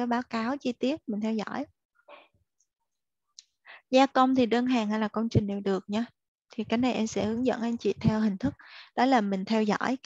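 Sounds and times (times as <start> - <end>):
person speaking: 4.0 - 10.0
soft breath: 8.5 - 9.0.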